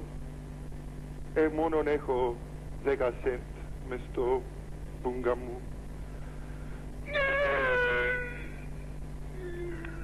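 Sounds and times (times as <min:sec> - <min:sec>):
steady low hum: 0:00.0 - 0:10.0
high-pitched vocal cry over telephone: 0:07.1 - 0:08.6.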